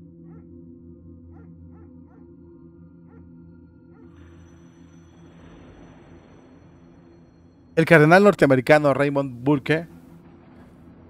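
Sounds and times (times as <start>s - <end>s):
quiet background music drone: 0.0s - 11.0s.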